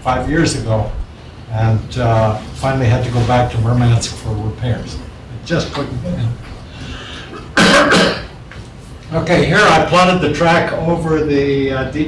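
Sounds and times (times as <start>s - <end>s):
person coughing: 7.2s - 8.4s.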